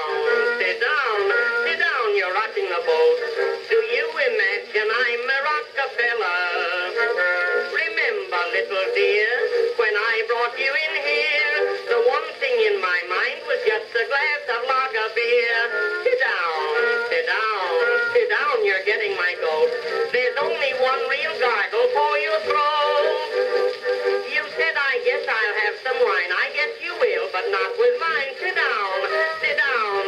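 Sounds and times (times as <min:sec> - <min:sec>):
early acoustic recording music: 0:00.0 - 0:30.0.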